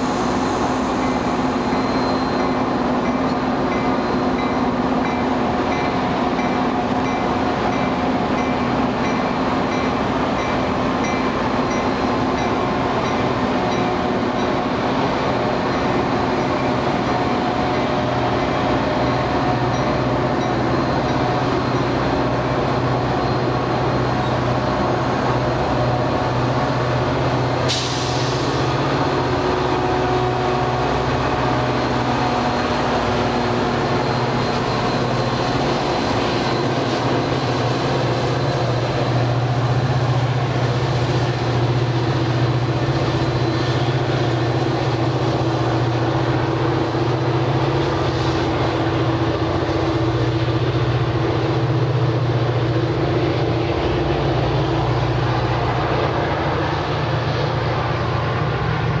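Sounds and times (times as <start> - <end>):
diesel locomotive engine droning: 0.0 - 59.0.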